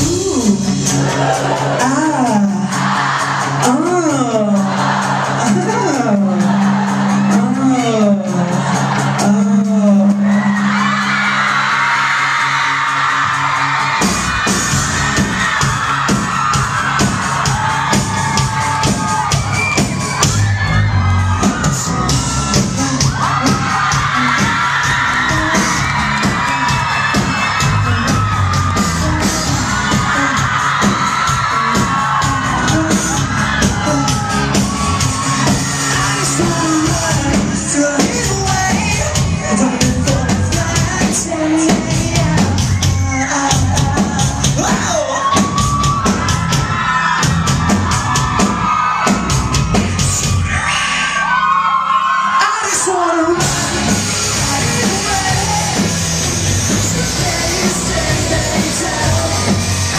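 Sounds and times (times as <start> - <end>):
sustained bass notes: 0.0 - 11.4, 25.0 - 30.6, 53.3 - 59.9
pop-rock band with drums: 0.0 - 59.9
person singing: 21.8 - 45.9, 52.4 - 59.9.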